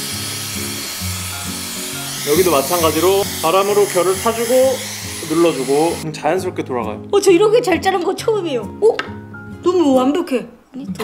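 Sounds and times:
hot-air styler blowing air: 0:00.0 - 0:06.0
background music: 0:00.0 - 0:11.0.

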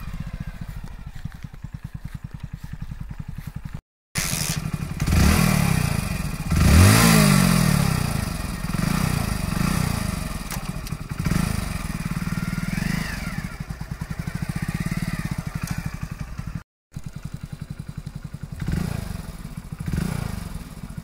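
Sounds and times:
motorcycle engine idling and revving: 0:00.0 - 0:21.0.

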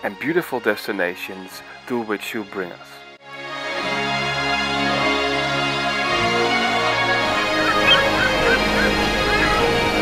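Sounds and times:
background music: 0:00.0 - 0:10.0
short bird calls: 0:07.5 - 0:09.7.

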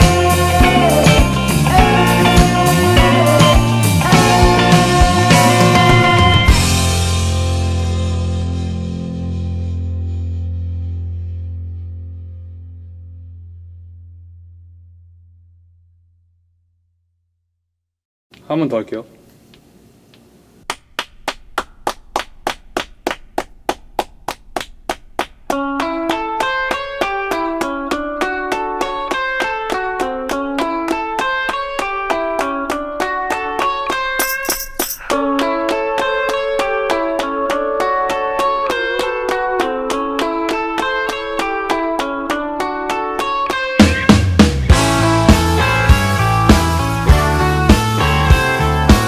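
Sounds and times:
rock band playing: 0:00.0 - 0:10.4, 0:25.5 - 0:49.0
picked guitar chord pattern: 0:00.0 - 0:11.9, 0:35.1 - 0:49.0.

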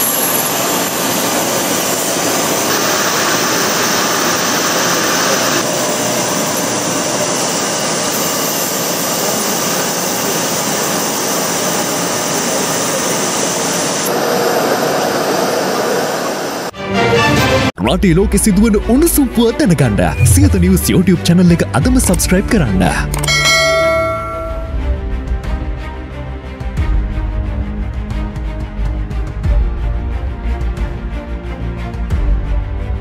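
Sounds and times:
jet engines running: 0:00.0 - 0:16.8, 0:20.0 - 0:24.8.

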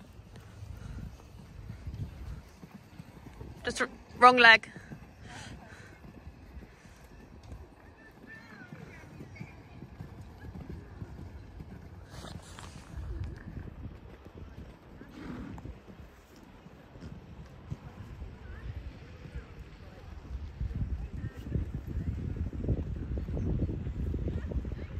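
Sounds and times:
horse hoofbeats on sand: 0:00.0 - 0:20.0.

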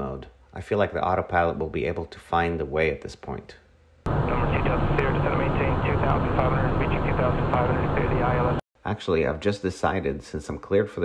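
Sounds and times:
jet engine and airflow drone: 0:04.1 - 0:08.6
faint voices: 0:04.3 - 0:08.6.

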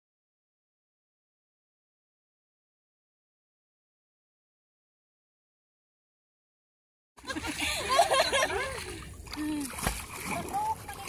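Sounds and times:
water splashing: 0:07.2 - 0:11.0
voices talking and calling out: 0:07.6 - 0:11.0.

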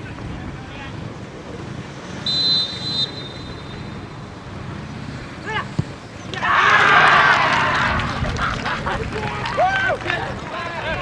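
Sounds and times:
crowd cheering and shouting: 0:06.3 - 0:11.0.

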